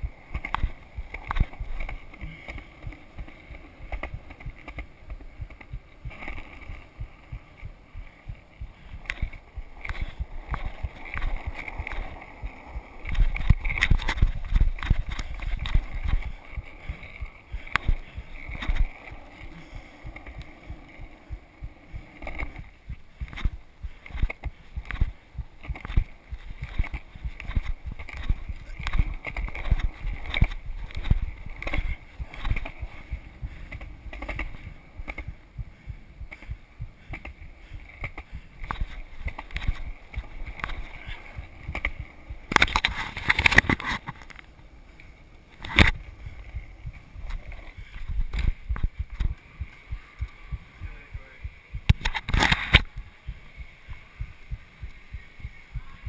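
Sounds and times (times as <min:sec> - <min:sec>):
skateboard wheels rolling: 0:00.0 - 0:56.0.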